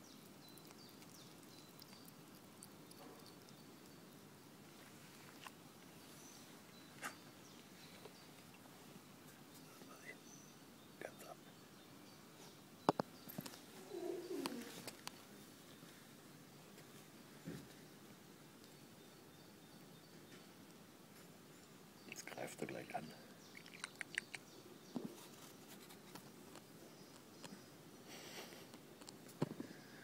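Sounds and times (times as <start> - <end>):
pigeon cooing: 13.8 - 14.8.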